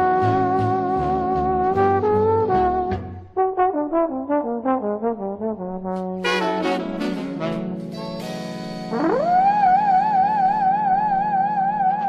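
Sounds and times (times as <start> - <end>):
trombone lead notes: 0.0 - 10.5
brass section held chord: 5.9 - 9.7.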